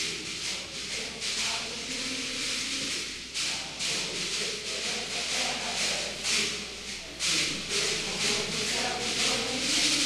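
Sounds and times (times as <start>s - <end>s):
plastic shaker rattles: 0.0s - 10.0s.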